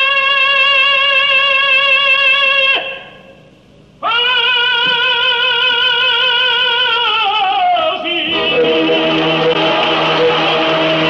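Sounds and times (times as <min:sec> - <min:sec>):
operatic tenor singing: 0:00.0 - 0:03.0, 0:04.0 - 0:11.0
orchestra sustained chord: 0:08.3 - 0:11.0.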